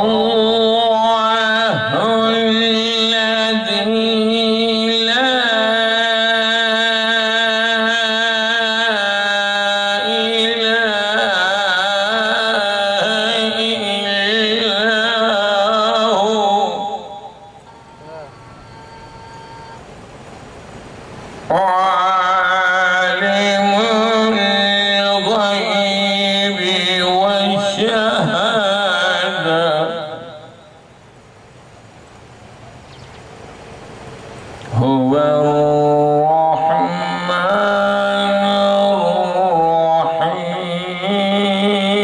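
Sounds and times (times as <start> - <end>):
man chanting through microphone: 0.0 - 18.4, 21.5 - 30.8, 34.7 - 42.0
sound system rumble and hiss: 0.0 - 42.0
faint steady tone: 16.8 - 21.5
faint voice: 18.0 - 18.4.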